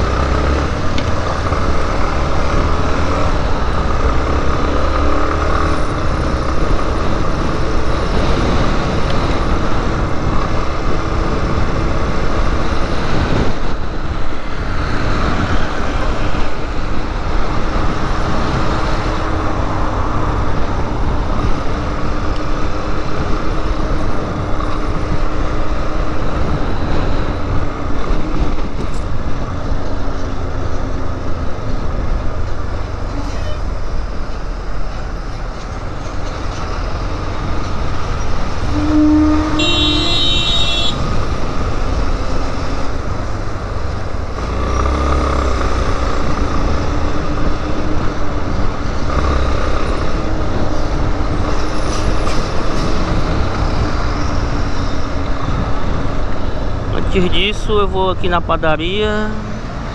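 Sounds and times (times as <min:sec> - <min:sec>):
wind and road noise: 0:00.0 - 0:59.9
vehicle horn: 0:38.6 - 0:41.1.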